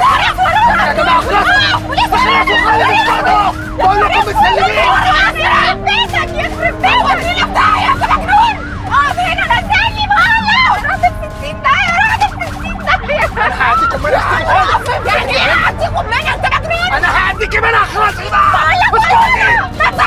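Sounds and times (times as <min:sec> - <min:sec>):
dramatic music score: 0:00.0 - 0:20.0
people shouting and screaming: 0:00.0 - 0:20.0.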